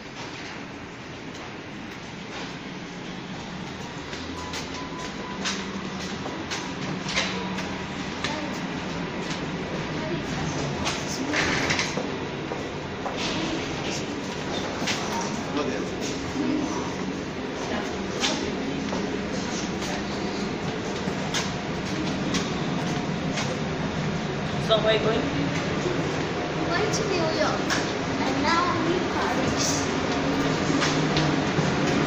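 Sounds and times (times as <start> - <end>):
steady background rumble: 0.0 - 32.0
footsteps: 1.3 - 32.0
indistinct voices: 2.4 - 32.0.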